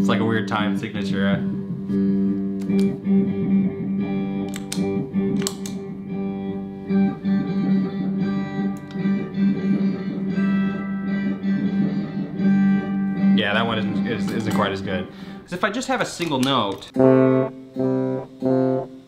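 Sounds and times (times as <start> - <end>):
looped low drone: 0.8 - 15.2.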